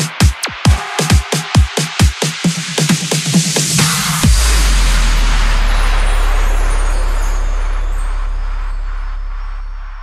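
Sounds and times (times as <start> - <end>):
deep sub-bass tone: 4.1 - 10.0.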